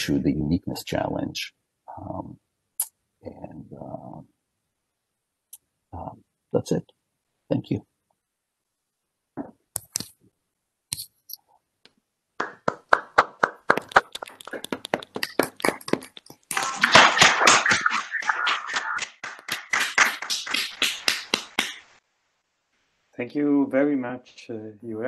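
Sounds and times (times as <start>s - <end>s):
people clapping: 12.4s - 22.0s.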